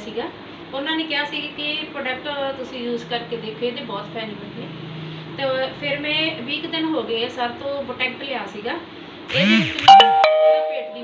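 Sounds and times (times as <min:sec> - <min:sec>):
doorbell ding-dong chime: 0:09.9 - 0:11.0.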